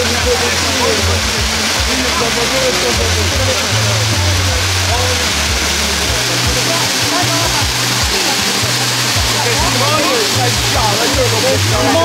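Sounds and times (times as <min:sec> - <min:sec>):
guests' voices: 0:00.0 - 0:12.0
hiss of spark fountains spraying: 0:00.0 - 0:12.0
party music with bass line: 0:00.0 - 0:12.0.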